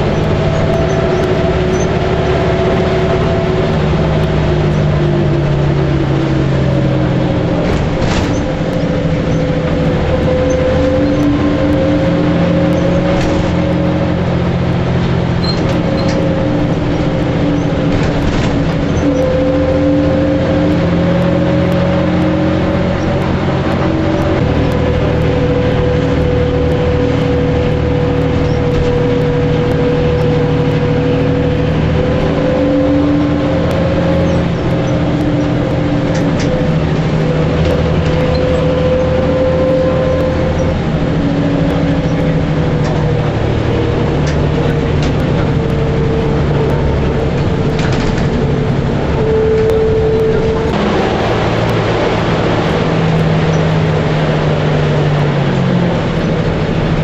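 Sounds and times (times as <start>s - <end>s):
bus engine and drivetrain hum: 0.0s - 57.0s
road noise: 0.0s - 57.0s.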